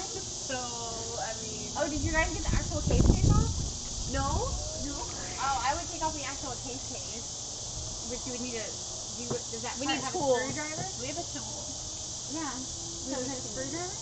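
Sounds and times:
women talking: 0.0s - 7.3s, 8.0s - 14.0s
insects chirping: 0.0s - 14.0s.

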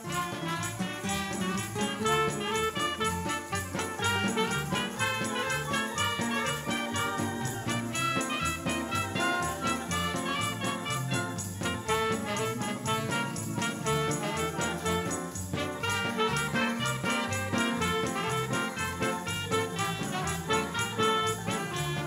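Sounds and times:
band playing lively dance tune: 0.0s - 22.0s
high percussion beat: 0.0s - 22.0s.

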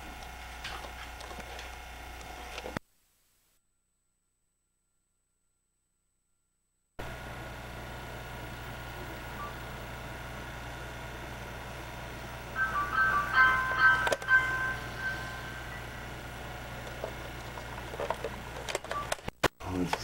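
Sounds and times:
low hum: 7.0s - 19.4s
chiming tune: 12.5s - 16.3s.

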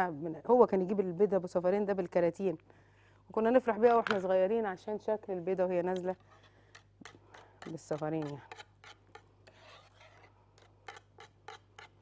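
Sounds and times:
whisk scraping metal saucepan: 7.3s - 12.0s.

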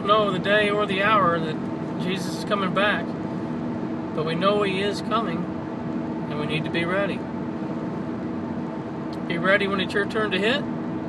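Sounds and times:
car engine hum: 0.0s - 11.0s
road noise: 0.0s - 11.0s.

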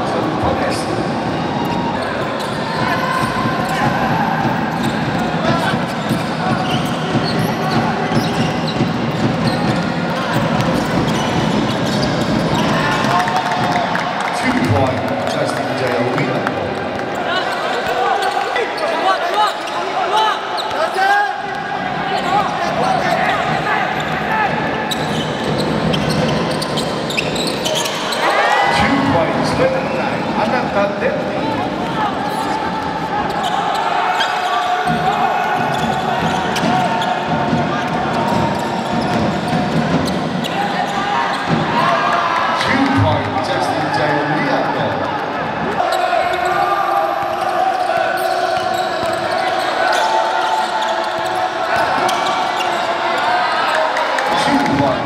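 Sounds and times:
sneakers squeaking: 0.0s - 14.0s, 17.1s - 30.7s, 31.3s - 43.0s, 45.7s - 55.0s
voices echoing: 0.0s - 55.0s
basketball bouncing: 2.4s - 13.8s.

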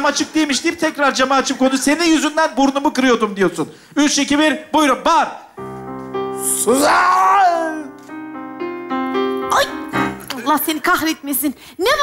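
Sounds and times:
upright piano single notes: 5.6s - 10.6s.

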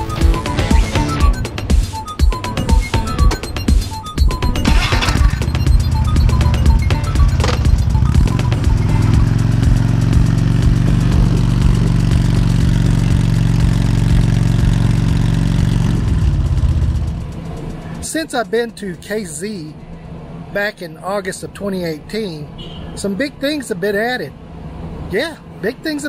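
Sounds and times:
background music: 0.0s - 18.2s
motorcycle engine low revs: 4.7s - 17.3s.

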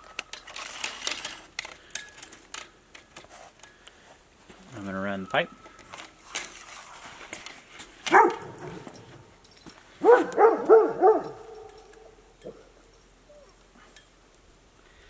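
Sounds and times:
dog yelping: 8.1s - 8.8s, 10.0s - 12.6s.

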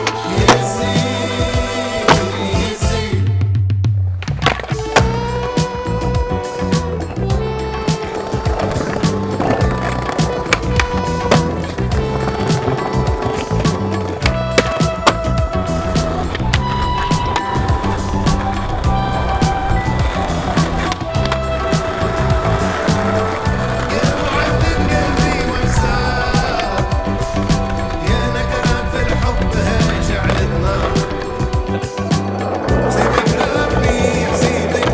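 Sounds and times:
skateboard wheels rolling on concrete: 0.0s - 3.2s, 3.9s - 34.9s
music soundtrack: 0.0s - 34.9s
skateboard clacks: 2.1s - 2.6s, 4.2s - 34.9s.

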